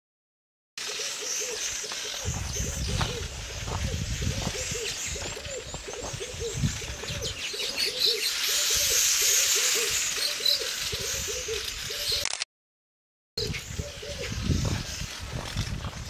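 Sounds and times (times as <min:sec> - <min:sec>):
bird hooting: 0:00.8 - 0:12.2, 0:13.4 - 0:14.4.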